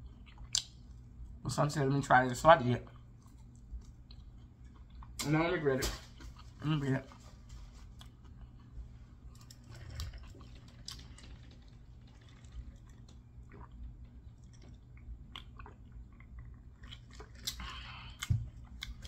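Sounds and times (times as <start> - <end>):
wet mouth clicks and smacks: 0.3 - 0.8
chewing chicken wings: 6.3 - 19.0
sipping and swallowing a drink: 9.4 - 19.0.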